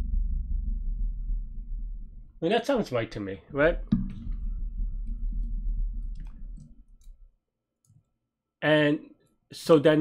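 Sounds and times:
low rumble: 0.0s - 2.4s, 3.6s - 7.3s.

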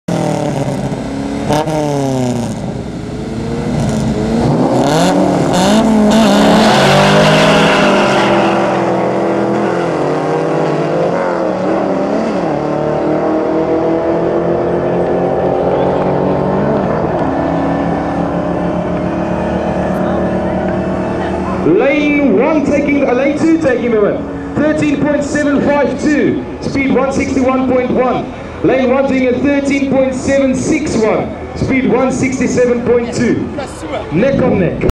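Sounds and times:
cars accelerating hard: 0.1s - 34.8s
drag car engines revving: 0.1s - 34.8s.

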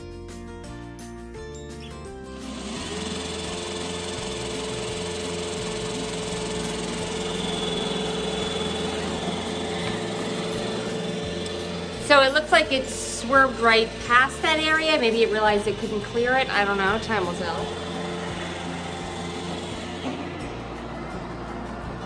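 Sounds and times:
background music with bass line: 0.0s - 22.0s
robot vacuum whirring: 2.3s - 21.0s.

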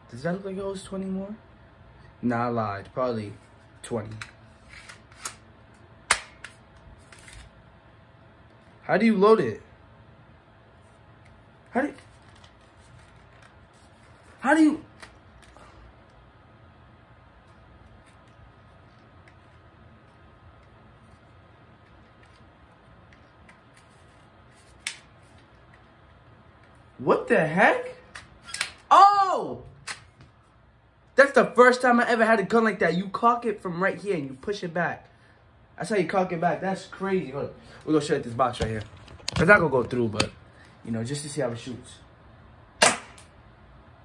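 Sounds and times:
loud plastic snap: 6.1s - 6.6s, 28.1s - 28.9s, 29.8s - 30.3s, 42.8s - 43.3s.

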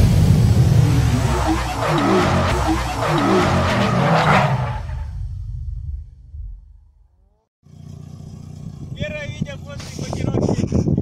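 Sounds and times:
low rumble: 0.0s - 7.2s
car engine idling: 7.6s - 10.2s
people talking: 9.0s - 11.0s.

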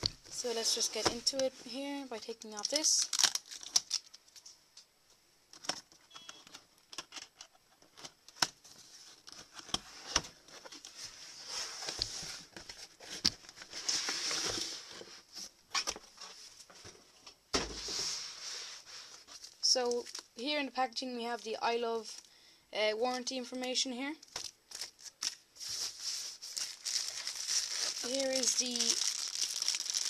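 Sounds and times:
cardboard sliding and rustling: 8.7s - 15.5s, 17.6s - 19.5s, 25.6s - 28.2s.

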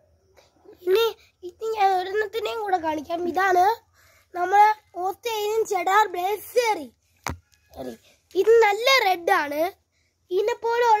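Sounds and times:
boy speaking in high voice: 0.6s - 7.0s, 7.7s - 11.0s.

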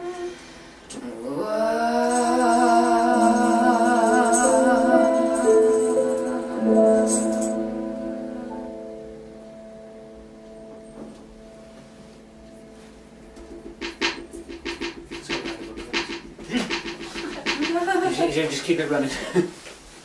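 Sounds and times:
piano and guitar chord ringing: 2.1s - 15.7s
people laughing: 16.4s - 18.5s.

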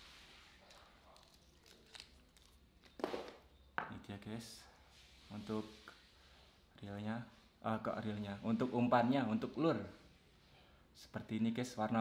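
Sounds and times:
plastic packaging crinkling: 0.6s - 3.5s.

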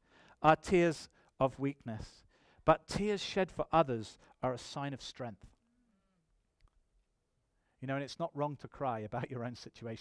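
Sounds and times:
man speaking: 0.4s - 5.6s, 7.8s - 10.0s.

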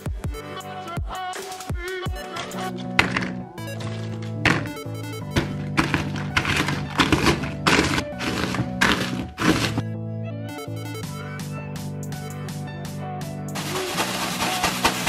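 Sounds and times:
background music with bass notes: 0.0s - 15.0s
dull thuds pounding cookies: 2.4s - 9.8s.

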